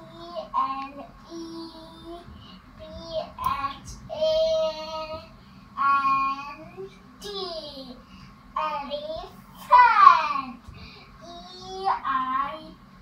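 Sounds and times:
child singing: 0.0 - 8.0, 8.6 - 10.6, 11.2 - 12.8.

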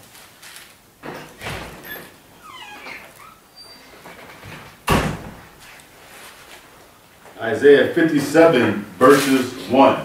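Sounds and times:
paper pages rustling: 0.0 - 0.8, 5.6 - 6.7
thin squeaky whine: 1.8 - 4.3.

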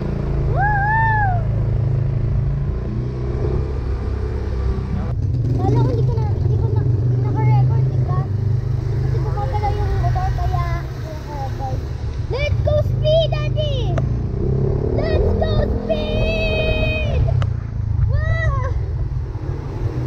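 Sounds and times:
scooter engine hum: 0.0 - 20.0
people talking: 4.9 - 8.3, 9.1 - 14.1, 14.9 - 17.4.

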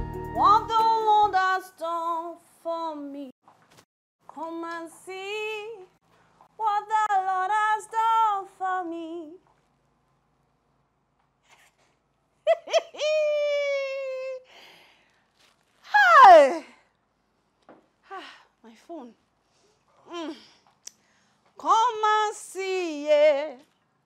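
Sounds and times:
woman singing wordless tune: 0.3 - 3.3, 4.3 - 9.5, 21.6 - 23.7.

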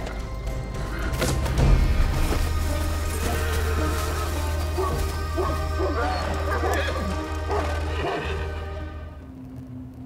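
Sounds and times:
dramatic film score: 0.0 - 10.0
horses whinnying: 3.4 - 8.7.

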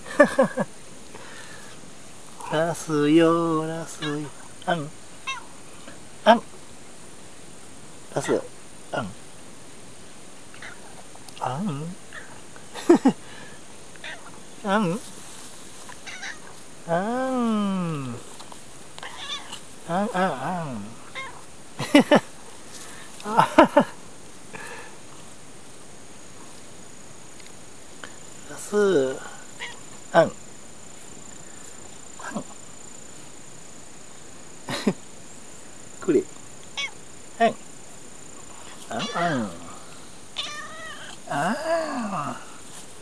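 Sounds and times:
cat meowing: 5.2 - 5.5, 10.6 - 10.8, 14.0 - 14.3, 16.0 - 16.5, 19.0 - 19.6, 21.1 - 21.4, 29.6 - 29.8, 36.8 - 37.0, 38.9 - 39.7, 40.4 - 41.2.

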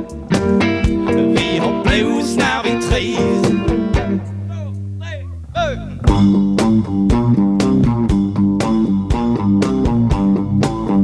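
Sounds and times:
blues band playing: 0.0 - 11.0
short bending notes: 0.0 - 11.0.

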